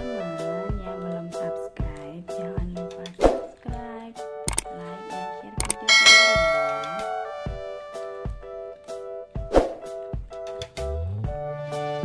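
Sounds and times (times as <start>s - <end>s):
background music with steady beat: 0.0s - 12.0s
notification bell chime: 5.8s - 7.3s.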